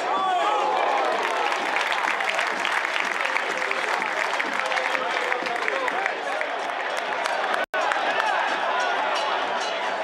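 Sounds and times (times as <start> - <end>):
crowd applauding: 0.6 - 8.6.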